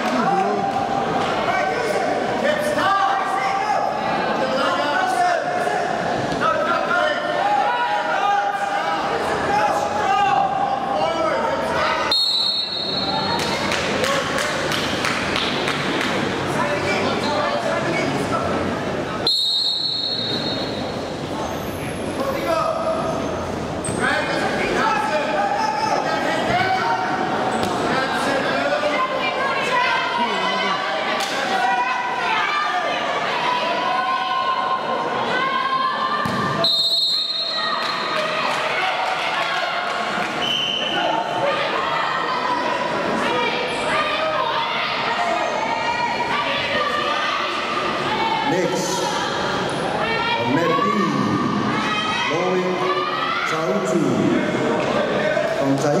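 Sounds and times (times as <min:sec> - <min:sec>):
crowd noise: 0:00.0 - 0:56.0
referee's whistle blast: 0:12.1 - 0:13.3, 0:19.2 - 0:20.9
shouting voices echoing: 0:23.9 - 0:56.0.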